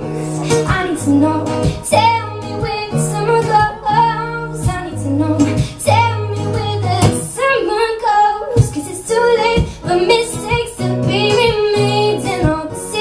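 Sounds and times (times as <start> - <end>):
guitar playing low notes: 0.0 - 13.0
woman singing: 0.0 - 13.0.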